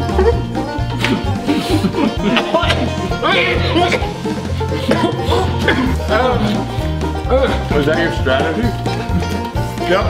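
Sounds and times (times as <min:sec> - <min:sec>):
music with plucked strings: 0:00.0 - 0:10.0.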